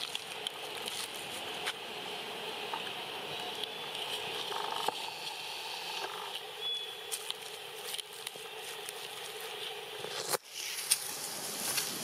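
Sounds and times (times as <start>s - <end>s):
steady high hiss: 0.0s - 12.0s
thin high chirp: 6.6s - 7.1s.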